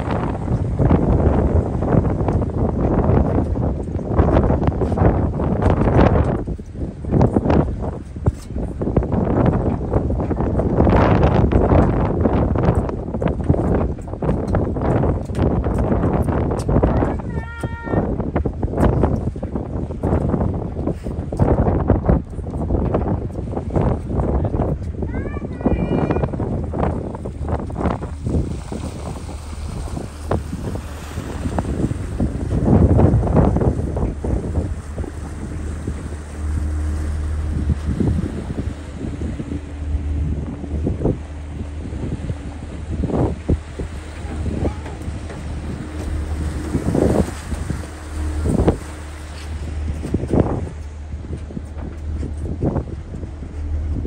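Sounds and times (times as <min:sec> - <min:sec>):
ship engine hum: 0:00.0 - 0:54.0
wind gusting on microphone: 0:00.0 - 0:54.0.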